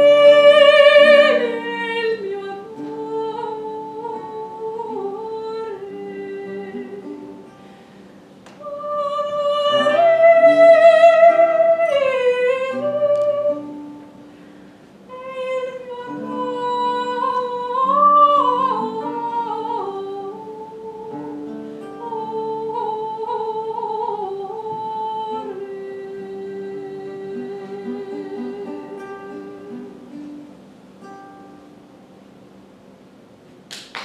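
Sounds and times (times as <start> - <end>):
woman singing: 0.0 - 7.5, 8.5 - 14.0, 15.1 - 30.2
lute: 0.0 - 33.0.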